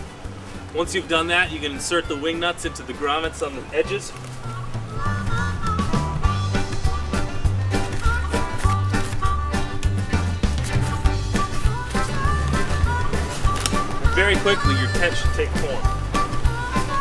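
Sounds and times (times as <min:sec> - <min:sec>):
walking bass line: 0:00.0 - 0:17.0
steady drum beat: 0:04.6 - 0:17.0.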